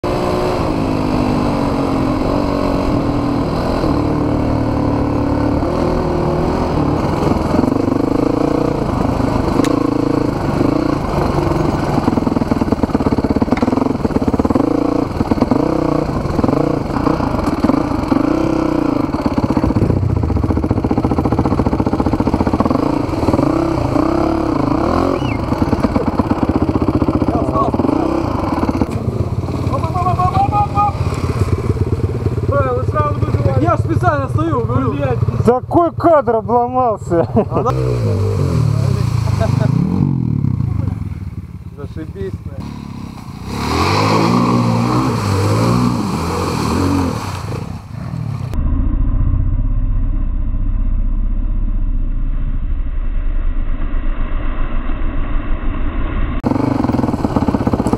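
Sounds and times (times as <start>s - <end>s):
motorcycle engine revving: 0.0s - 53.2s, 56.3s - 57.9s.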